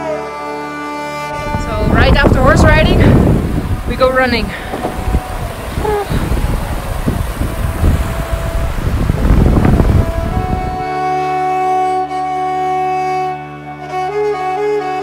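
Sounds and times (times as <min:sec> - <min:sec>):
bowed string music: 0:00.0 - 0:15.0
wind buffeting microphone: 0:01.4 - 0:10.9.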